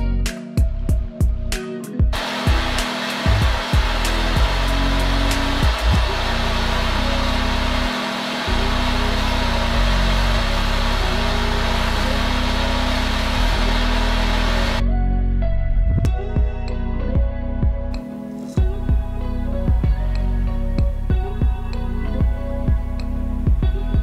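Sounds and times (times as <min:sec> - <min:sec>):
background music with low notes: 0:00.0 - 0:24.0
propane torch flame hissing: 0:02.2 - 0:14.8.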